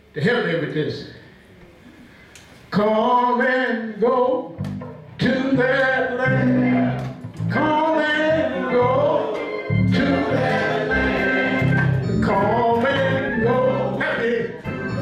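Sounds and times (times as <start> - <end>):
electric keyboard low notes: 4.6 - 15.0
men singing gospel: 5.2 - 15.0.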